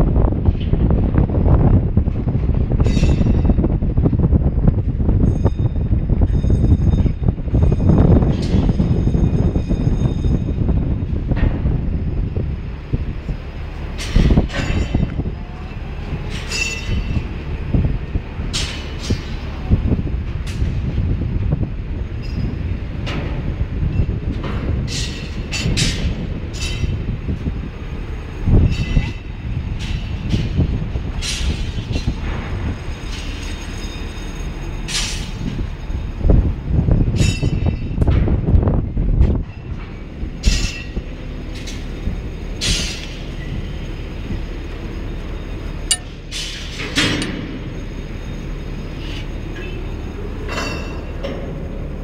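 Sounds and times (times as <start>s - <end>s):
crane machinery rumbling: 0.0s - 52.0s
metallic clinks: 45.9s - 46.3s.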